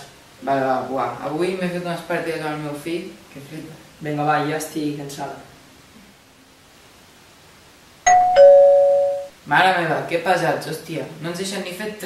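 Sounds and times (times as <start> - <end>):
two-note doorbell chime: 8.1 - 9.4.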